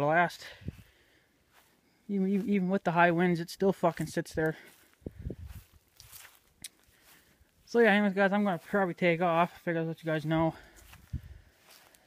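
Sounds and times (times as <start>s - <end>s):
footsteps on dry grass: 0.0s - 12.0s.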